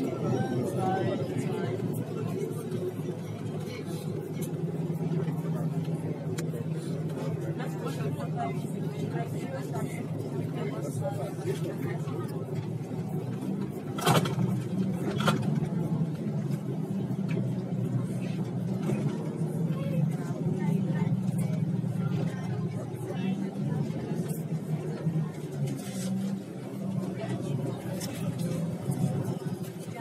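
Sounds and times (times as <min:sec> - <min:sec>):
people talking: 0:00.0 - 0:30.0
vehicle traffic hum: 0:00.0 - 0:30.0.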